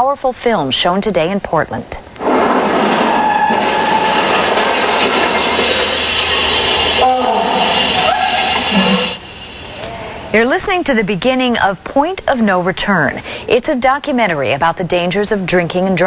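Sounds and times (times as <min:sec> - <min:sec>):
voice: 0:00.0 - 0:02.0, 0:09.8 - 0:16.0.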